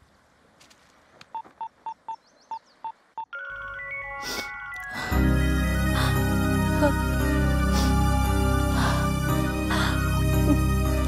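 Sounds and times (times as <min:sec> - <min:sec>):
music: 0:03.4 - 0:11.0.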